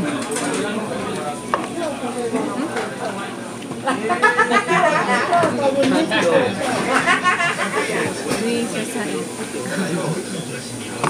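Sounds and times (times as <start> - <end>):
background talk: 0.0 - 11.0.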